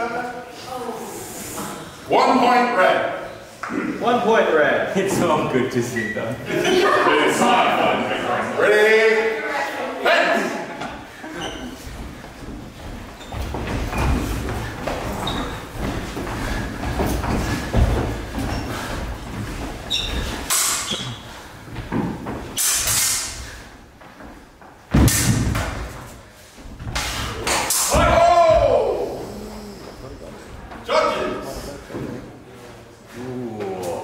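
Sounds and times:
footsteps on wooden floor: 10.8s - 22.6s, 23.7s - 25.0s.

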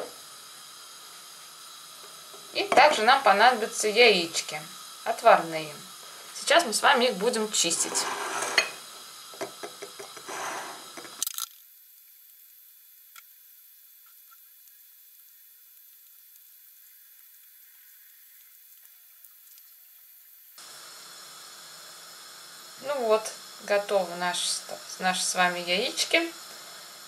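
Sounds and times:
steady low hiss: 0.0s - 27.0s
eggshells cracking and peeling: 11.1s - 11.6s.

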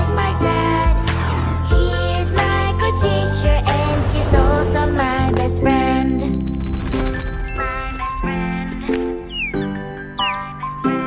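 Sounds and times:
falling bird chirps: 5.6s - 10.7s.

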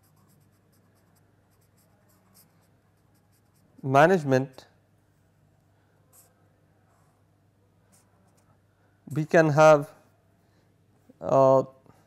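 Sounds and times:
pen writing on paper: 0.0s - 3.7s.

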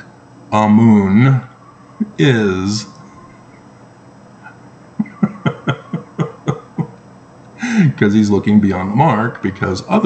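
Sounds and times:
man laughing: 4.4s - 7.0s, 7.6s - 8.0s.

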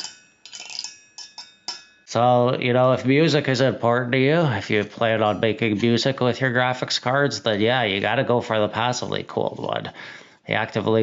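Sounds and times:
metal heatsink fins plucked: 0.0s - 2.1s.

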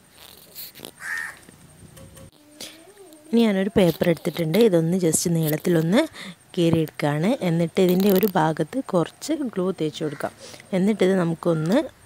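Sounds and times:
crow cawing: 1.0s - 1.4s, 10.0s - 10.4s.

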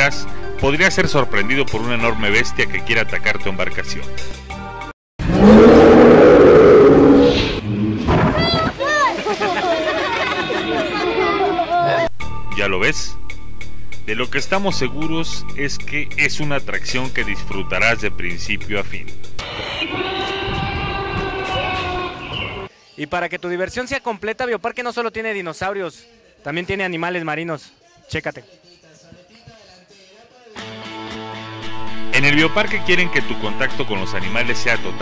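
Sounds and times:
music: 0.0s - 5.0s, 11.2s - 22.7s, 30.5s - 35.0s
rough dinosaur roar: 5.2s - 8.6s
dinosaur roar: 5.2s - 8.8s, 19.4s - 22.7s.

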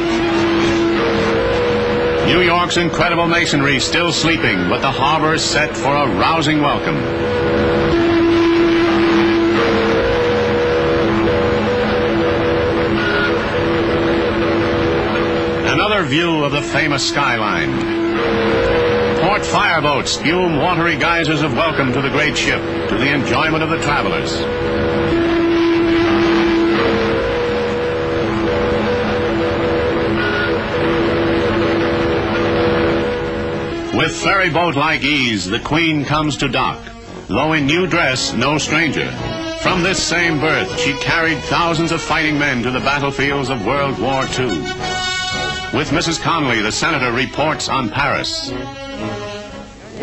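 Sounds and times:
continuous hiss: 0.0s - 50.0s
ship whistles: 0.0s - 50.0s
steady rushing noise: 0.0s - 50.0s.

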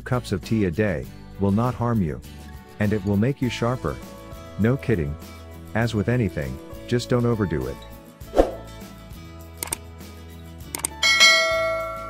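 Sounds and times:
quick clicks: 9.6s - 9.8s, 10.7s - 11.0s.

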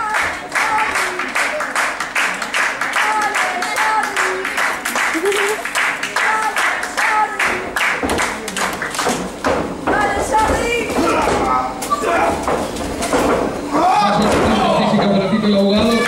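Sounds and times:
crowd clapping: 0.0s - 9.5s.

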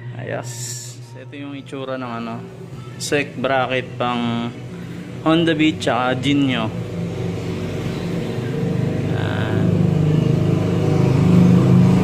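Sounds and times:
engine running steadily: 2.4s - 12.0s.

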